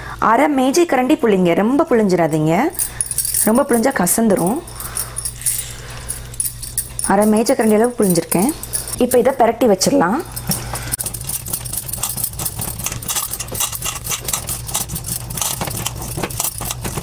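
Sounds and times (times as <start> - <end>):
glass bangles clinking: 2.7 - 17.0.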